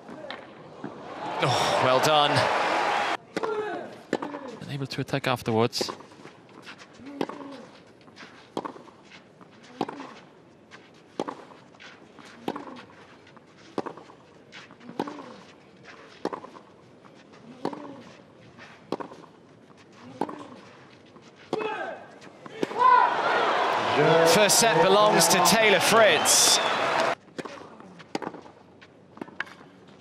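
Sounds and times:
crowd cheering: 0:00.8 - 0:03.2, 0:22.6 - 0:27.2
player grunting: 0:01.4 - 0:02.5.

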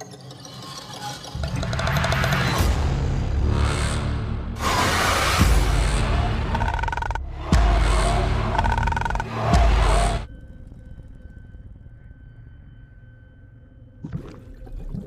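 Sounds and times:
horror trailer music: 0:00.0 - 0:14.8.

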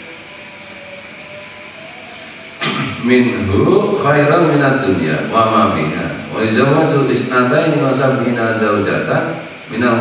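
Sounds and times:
room and microphone noise: 0:00.0 - 0:10.0
man reciting: 0:01.8 - 0:10.0.

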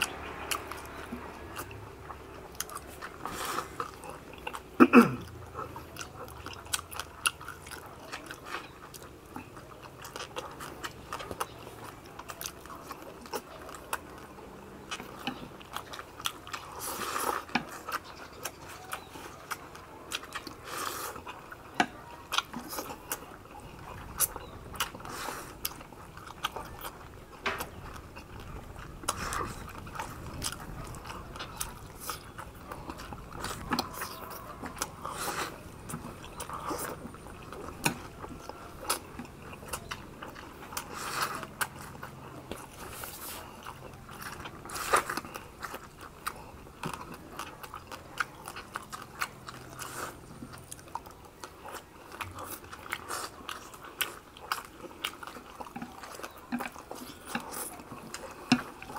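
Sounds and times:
people chewing: 0:00.0 - 0:58.9.

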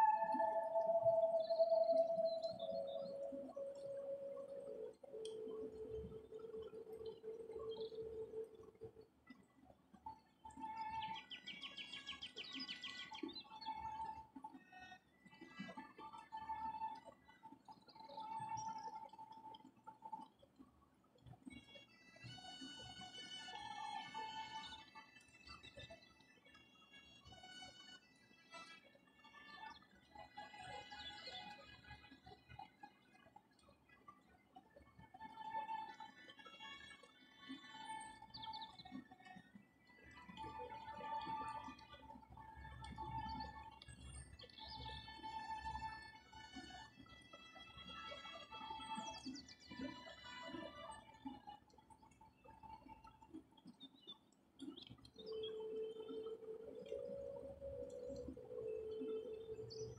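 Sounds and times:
soft instrumental music: 0:00.0 - 0:08.9, 0:21.6 - 0:33.0, 0:35.0 - 0:52.9, 0:55.2 - 0:59.9.

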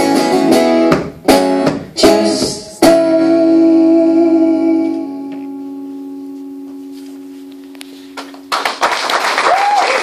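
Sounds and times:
audience applause: 0:08.5 - 0:10.0.

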